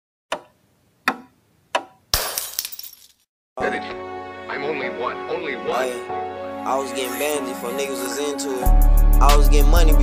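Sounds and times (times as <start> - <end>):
sharp knocks: 0.3 - 2.0
music with a beat: 8.6 - 10.0.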